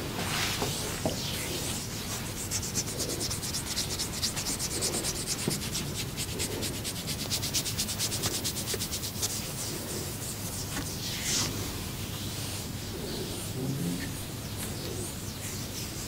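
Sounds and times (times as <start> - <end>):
hand rubbing skin and hair: 0.0 - 16.0.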